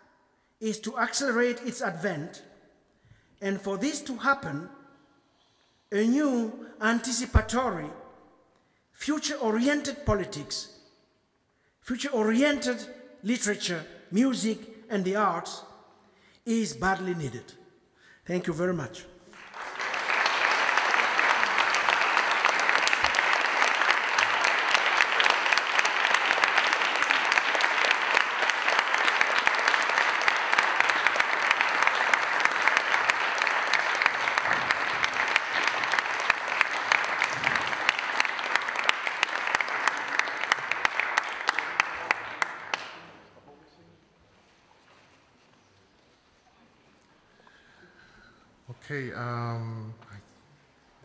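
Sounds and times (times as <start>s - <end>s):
audience applauding: 19.3s - 43.2s.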